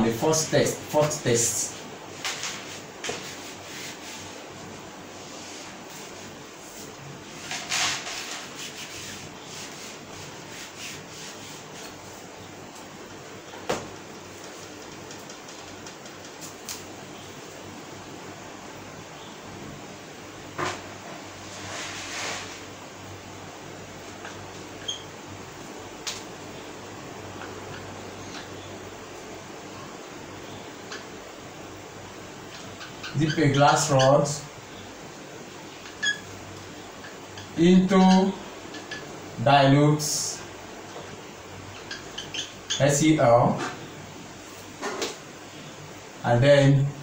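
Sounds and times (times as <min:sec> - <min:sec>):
room hum and hiss: 0:00.0 - 0:47.0
brief rubbing or brushing: 0:02.4 - 0:04.4, 0:05.1 - 0:12.0, 0:21.4 - 0:22.7
whiteboard marker squeak: 0:24.8 - 0:25.1, 0:36.0 - 0:36.3.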